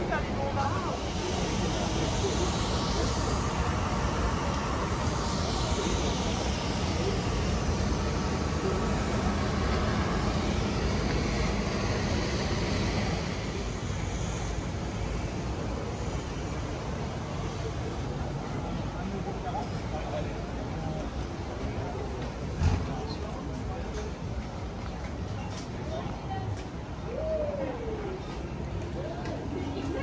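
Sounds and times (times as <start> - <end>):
indistinct voices of passers-by: 0.0 - 30.0
traffic rumble: 0.0 - 30.0.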